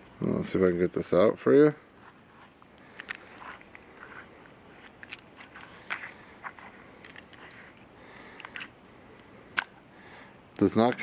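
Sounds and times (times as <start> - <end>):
metal lamp housing clicks and scrapes: 4.7 - 6.1.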